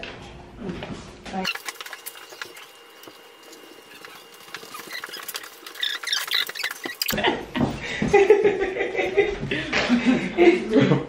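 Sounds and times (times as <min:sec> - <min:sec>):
paper rustling: 0:01.5 - 0:07.2.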